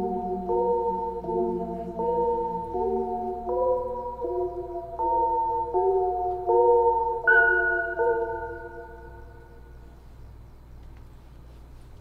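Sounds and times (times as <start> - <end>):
high synth note ringing: 0.0 - 9.8
synthesizer chords: 0.0 - 9.9
faint low hum: 0.0 - 12.0.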